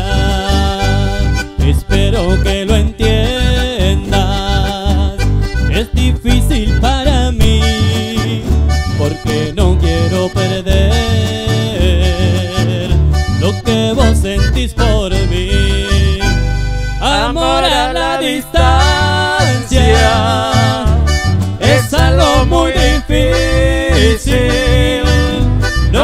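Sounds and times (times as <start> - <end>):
person singing: 0.0 - 16.4, 17.0 - 26.0
accordion: 0.0 - 26.0
acoustic guitar: 0.0 - 26.0
electric bass: 0.0 - 26.0.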